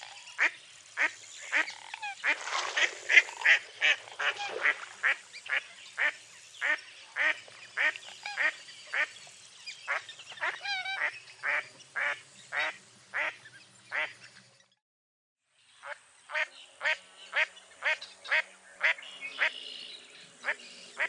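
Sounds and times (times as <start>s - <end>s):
duck quacking: 0.4s - 9.1s.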